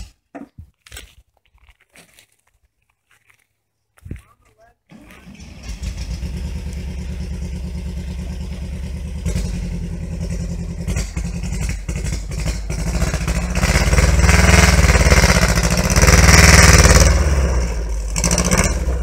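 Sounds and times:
car engine revving: 5.2 - 19.0.

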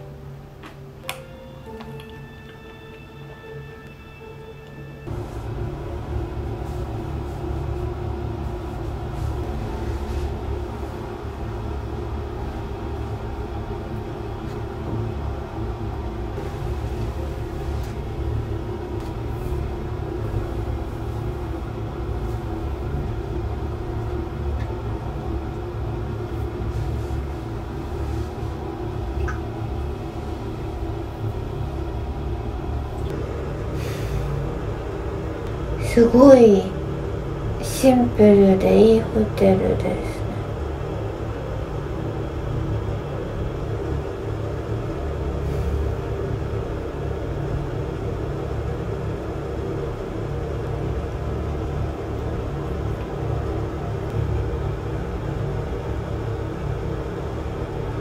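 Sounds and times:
music with steady tones: 0.0 - 7.4
steady low rumble: 0.0 - 58.0.

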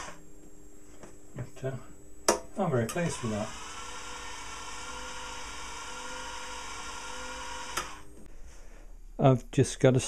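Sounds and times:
motor whine: 3.0 - 8.1
motor stopping click: 7.5 - 8.0.

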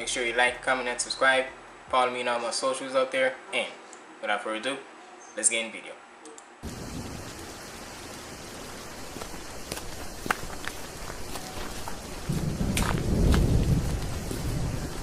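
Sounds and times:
thunder rolling: 6.6 - 8.7, 12.0 - 15.0
steady rain: 6.6 - 15.0.

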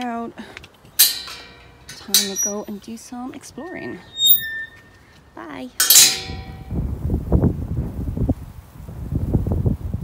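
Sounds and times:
metal gate clanging shut: 1.0 - 2.8, 3.8 - 5.0, 5.8 - 6.8
wind buffeting microphone: 5.8 - 10.0.

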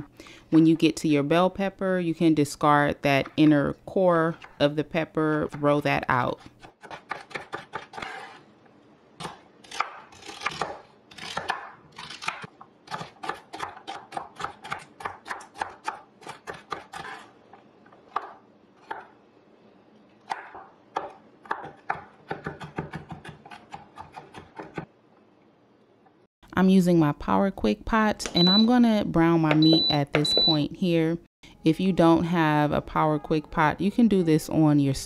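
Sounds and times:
knife chopping on wooden board: 20.3 - 24.9.

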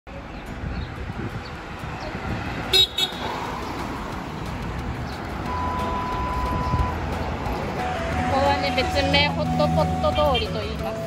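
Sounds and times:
road traffic: 0.1 - 11.0
car horn toots: 2.7 - 3.2
steady single-pitch beep: 5.5 - 7.0.

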